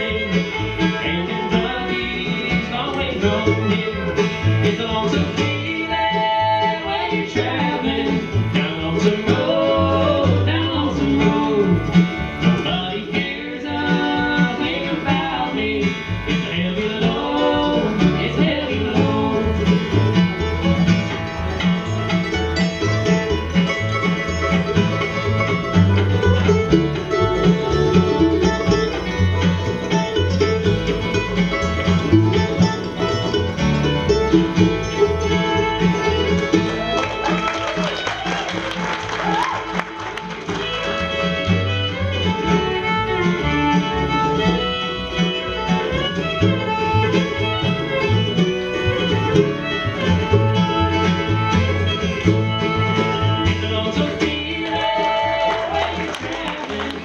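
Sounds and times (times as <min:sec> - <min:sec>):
acoustic guitar: 0:00.0 - 0:57.0
fiddle: 0:00.0 - 0:57.0
mandolin: 0:00.0 - 0:57.0
upright bass: 0:00.0 - 0:57.0.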